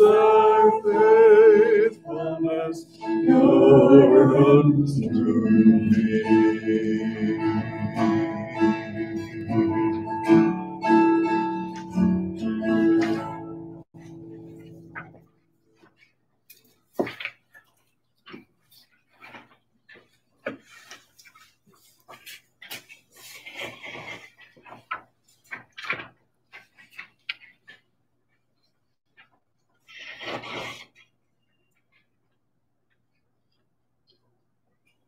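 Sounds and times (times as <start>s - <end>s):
acoustic guitar playing: 0.1s - 15.2s.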